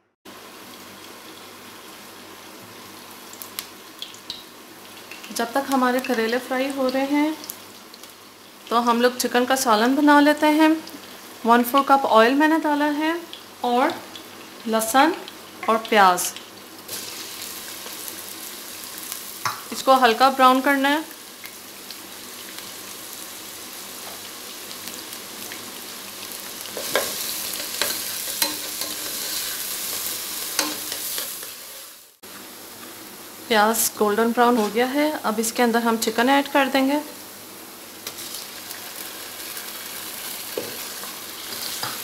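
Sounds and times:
oil sizzling in a frying pan: 0.3 - 42.0.

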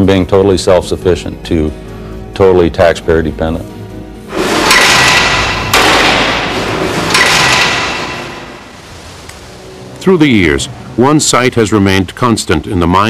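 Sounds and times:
metallic strikes with ringing: 4.4 - 8.8.

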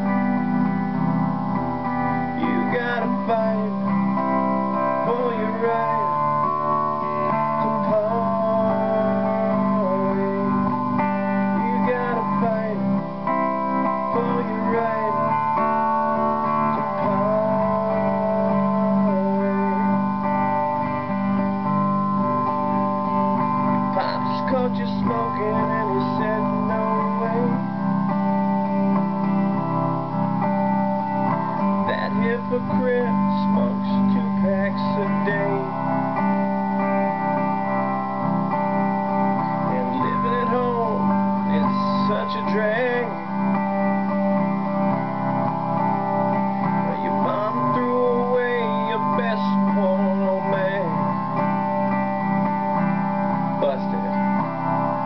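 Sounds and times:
electric guitar strumming chords: 0.0 - 55.0
man singing: 2.2 - 21.2, 23.8 - 28.0, 31.8 - 36.3, 39.6 - 43.5, 46.6 - 51.5, 53.6 - 54.4.

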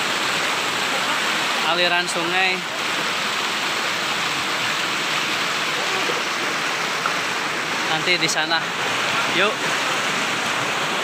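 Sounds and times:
river rushing over rocks: 0.0 - 11.0.

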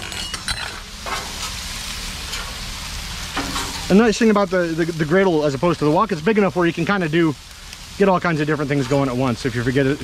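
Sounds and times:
food sizzling on griddle: 0.0 - 10.0.

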